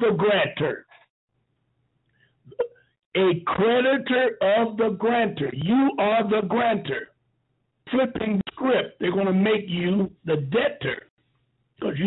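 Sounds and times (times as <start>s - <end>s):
man talking: 0.0s - 0.9s, 3.2s - 7.2s, 7.9s - 11.1s.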